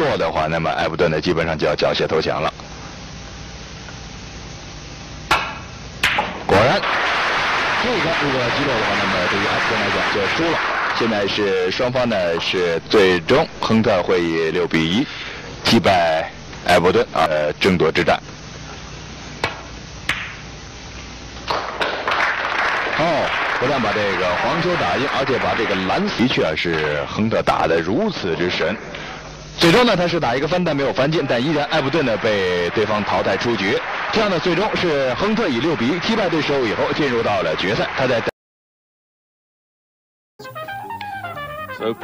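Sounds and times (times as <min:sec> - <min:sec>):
audience applause: 0:06.5 - 0:11.7, 0:21.5 - 0:26.4, 0:30.9 - 0:38.3.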